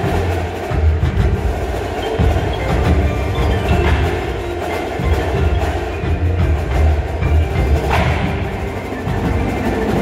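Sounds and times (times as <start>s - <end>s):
drums and cymbals: 0.0s - 10.0s
mallet keyboards: 0.0s - 10.0s.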